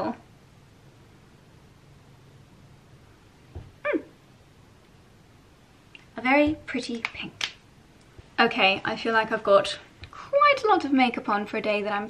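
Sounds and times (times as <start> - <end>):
soft knock: 3.5 - 3.8.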